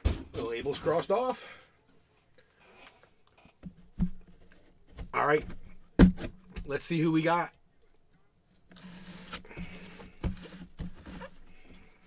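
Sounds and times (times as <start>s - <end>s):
cardboard box rustling and scraping: 8.8s - 11.6s.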